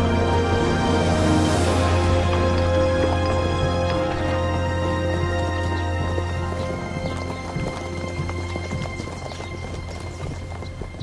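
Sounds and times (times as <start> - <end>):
background music with held notes: 0.0 - 11.0
horses hooves clip-clopping: 1.7 - 11.0.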